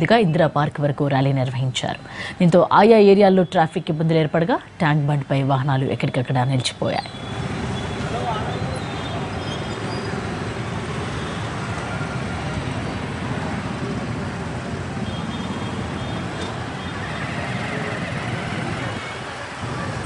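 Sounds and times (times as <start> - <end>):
auto-rickshaw engines: 0.0 - 20.0
motorbike engines: 6.5 - 20.0
car and truck engines: 7.1 - 20.0.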